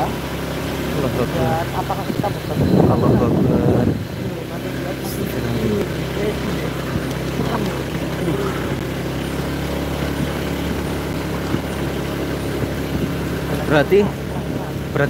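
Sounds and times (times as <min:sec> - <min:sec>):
motorcycle engine running: 0:00.0 - 0:15.0.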